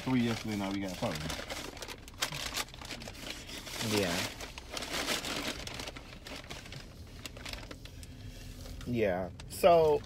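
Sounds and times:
crinkling and rustling: 0:00.0 - 0:10.0.

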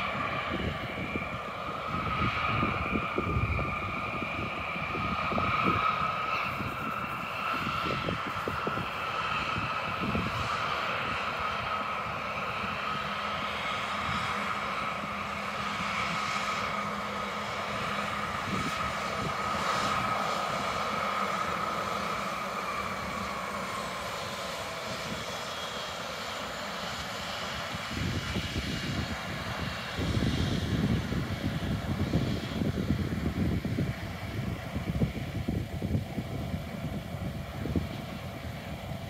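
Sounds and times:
jet engine whine: 0:00.0 - 0:39.0.

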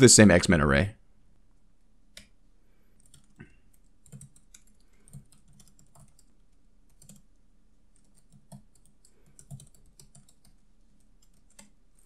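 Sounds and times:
keyboard typing: 0:03.0 - 0:12.0.

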